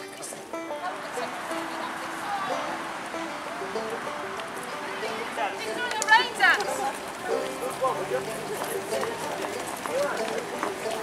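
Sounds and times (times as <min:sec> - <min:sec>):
footsteps on road: 0:00.0 - 0:11.0
people talking while walking: 0:00.0 - 0:11.0.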